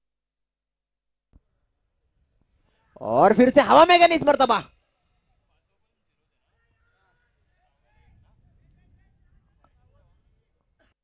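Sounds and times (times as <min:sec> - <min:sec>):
faint distant voices: 0:01.4 - 0:03.2, 0:04.2 - 0:11.0.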